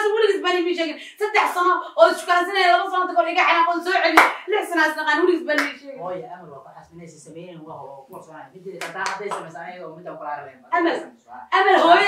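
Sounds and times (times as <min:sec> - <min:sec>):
sharp hand clap: 0:04.2 - 0:04.5, 0:05.6 - 0:05.8, 0:08.8 - 0:09.5.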